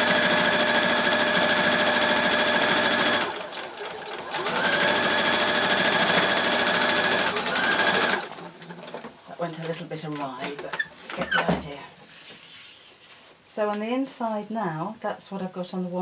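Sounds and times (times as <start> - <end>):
sewing machine stitching: 0.0 - 9.1.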